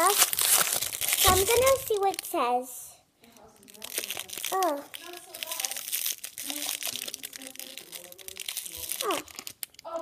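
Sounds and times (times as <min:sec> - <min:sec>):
toy packaging crinkling: 0:00.0 - 0:02.6, 0:03.4 - 0:10.0.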